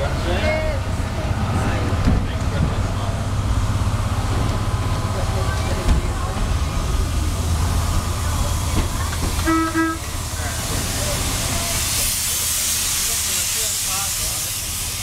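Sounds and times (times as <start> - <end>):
rail motor rumbling: 0.0 - 15.0
steam hissing: 6.6 - 15.0
train whistle toot: 9.4 - 10.1.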